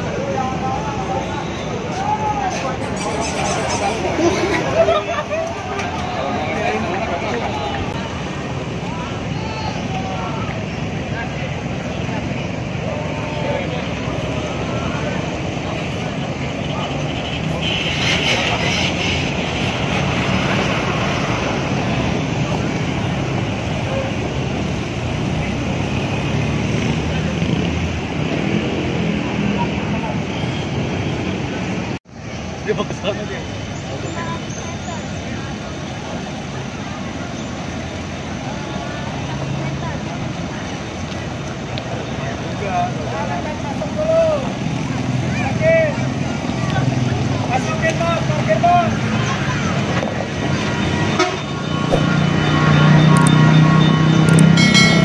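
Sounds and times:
bus diesel engines rumbling: 0.0s - 55.0s
crowd voices: 0.0s - 55.0s.

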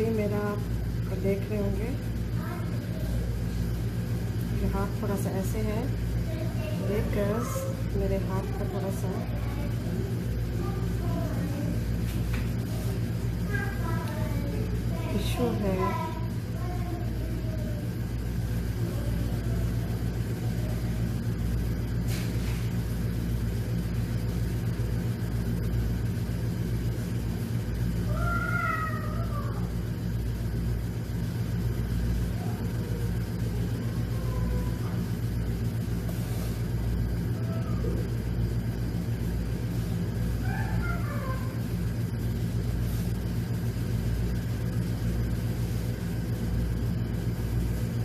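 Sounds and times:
low machine hum: 0.0s - 48.0s.

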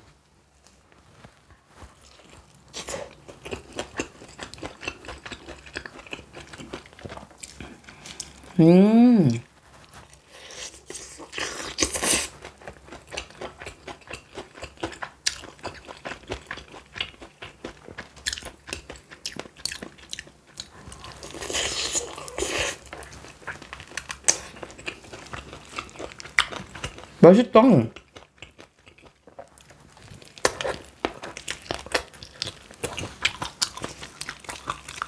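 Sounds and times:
biting and chewing chicken: 0.6s - 8.6s, 9.4s - 35.0s.

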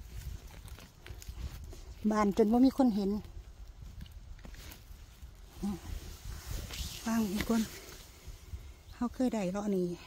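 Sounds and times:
twigs snapping: 0.0s - 5.5s
dry twigs and moss rustling: 0.0s - 10.0s.

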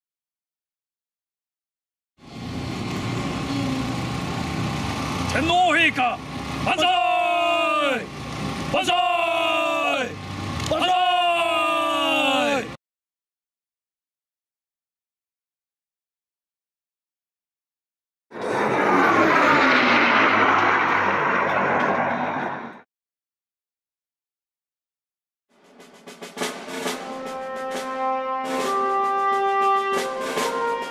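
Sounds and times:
propeller planes flying past: 2.2s - 6.8s, 7.7s - 8.8s, 10.1s - 10.8s, 18.3s - 22.8s
engine running at low speed: 2.2s - 10.9s, 18.3s - 22.8s.

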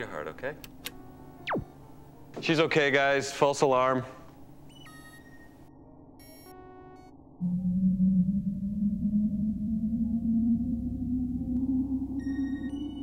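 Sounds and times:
soft electronic bleeps: 1.4s - 1.7s, 4.7s - 13.0s
low spaceship hum rising: 7.4s - 13.0s.

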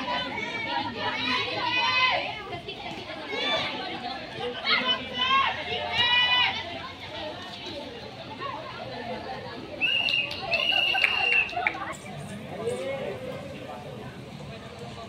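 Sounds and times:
people chattering and calling out: 0.0s - 15.0s
loud shout: 4.6s - 6.7s.

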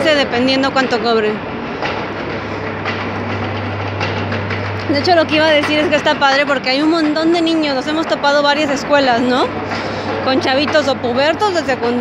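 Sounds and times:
low mechanical hum: 0.0s - 12.0s.

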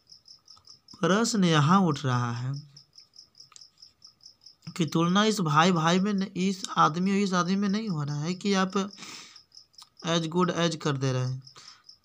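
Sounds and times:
cricket chirping: 0.0s - 12.0s
faint steady tone: 0.0s - 12.0s.

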